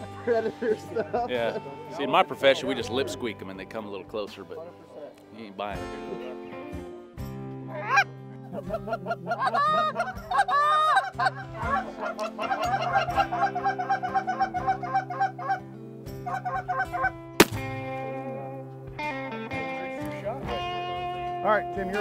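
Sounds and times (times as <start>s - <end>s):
geese honking: 7.7s - 17.2s
sharp crack: 17.4s - 18.0s.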